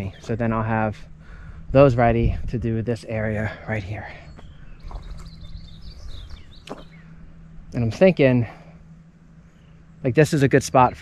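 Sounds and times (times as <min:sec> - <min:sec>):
steady low hum: 0:00.0 - 0:11.0
faint bird chirps: 0:03.1 - 0:11.0.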